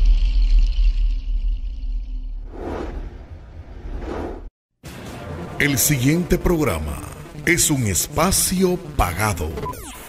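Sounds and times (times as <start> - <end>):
short swoosh: 2.4 - 4.5.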